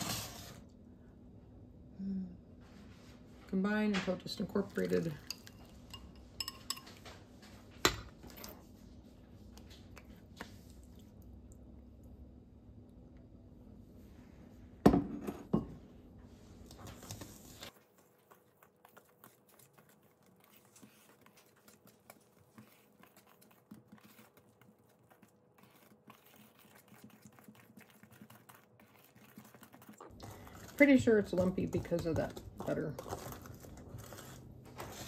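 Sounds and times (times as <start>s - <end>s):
whisk stirring batter in steel bowl: 3.1s - 11.3s, 16.4s - 35.0s.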